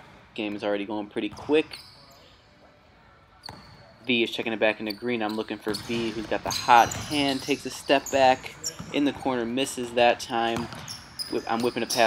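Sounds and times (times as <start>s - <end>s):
basketball bouncing on court floor: 3.5s - 3.8s, 5.6s - 7.6s, 10.4s - 12.0s.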